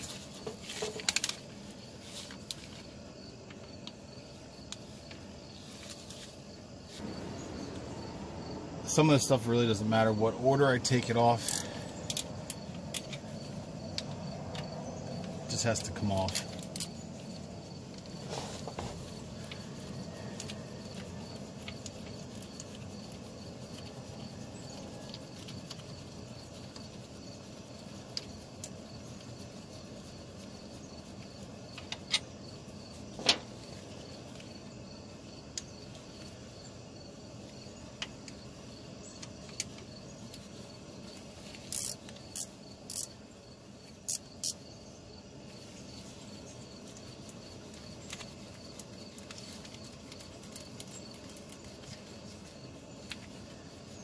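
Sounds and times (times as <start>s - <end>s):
low background hum: 0.2s - 54.0s
wrench clicking on bolts: 41.7s - 43.1s.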